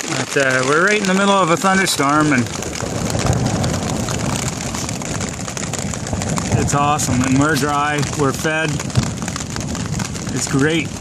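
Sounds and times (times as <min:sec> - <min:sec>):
rain pattering on a tarp: 0:00.0 - 0:11.0
low steady rumble: 0:00.7 - 0:11.0.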